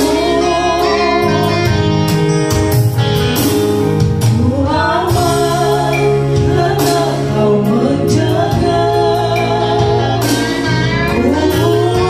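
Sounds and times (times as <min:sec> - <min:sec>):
woman singing gospel into microphone: 0:00.0 - 0:02.0, 0:04.2 - 0:12.0
electronic keyboard with bass: 0:00.0 - 0:12.0.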